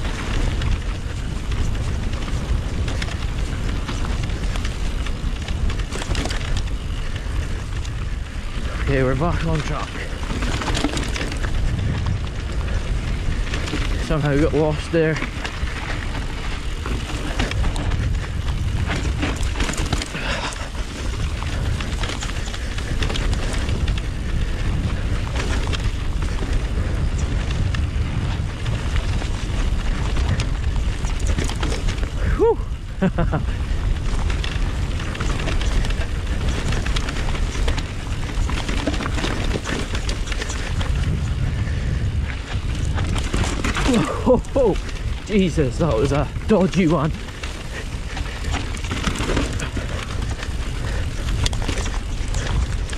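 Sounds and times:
bike knocks and rattles: 0:00.0 - 0:52.9
tyres rumbling: 0:00.0 - 0:52.9
wind buffeting microphone: 0:00.0 - 0:52.9.

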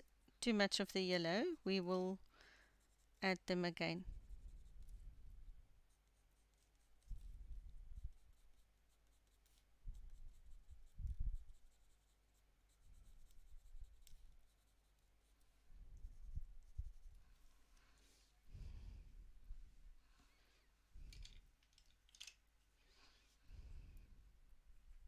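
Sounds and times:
coloured pencil scratching on paper: 0:02.7 - 0:17.4.

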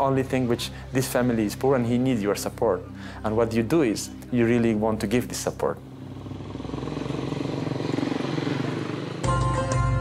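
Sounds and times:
music with drone and beat: 0:05.8 - 0:10.0
motorcycle engine running: 0:05.9 - 0:10.0.

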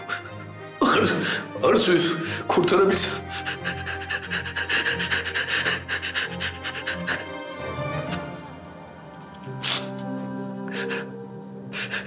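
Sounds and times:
man sobbing: 0:00.0 - 0:07.4
low music drone: 0:00.0 - 0:12.0.

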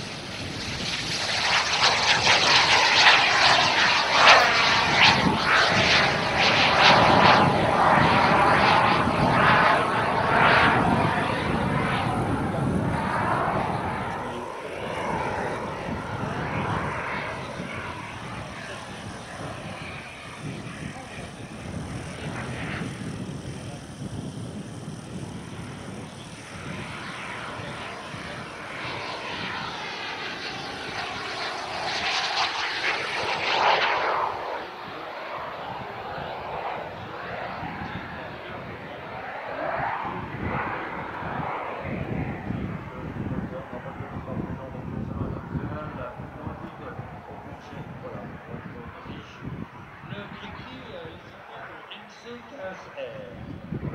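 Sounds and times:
aircraft passing whoosh: 0:00.0 - 0:53.9
small jet engines whining: 0:00.0 - 0:53.9.

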